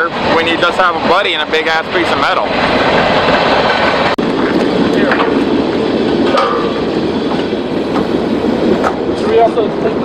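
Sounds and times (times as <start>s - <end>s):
freight train rumbling and rattling: 0.0s - 10.0s.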